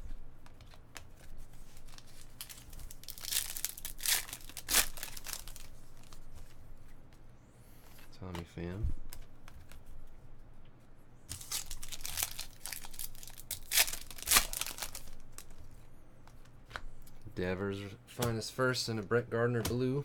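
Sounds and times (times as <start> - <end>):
foil wrapper tearing and crinkling: 1.7 - 6.2, 11.3 - 15.6.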